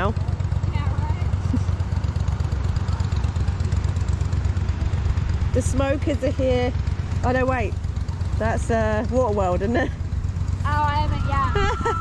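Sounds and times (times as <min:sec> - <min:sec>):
motorboat engine rumbling: 0:00.0 - 0:12.0.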